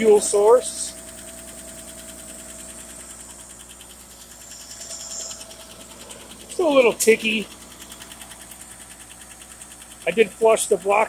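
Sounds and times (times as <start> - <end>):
car engine idling with tick: 0.0 - 11.0.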